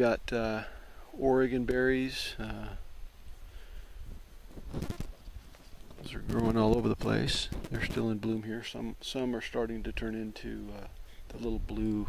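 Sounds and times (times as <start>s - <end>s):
low microphone rumble: 5.8s - 8.5s.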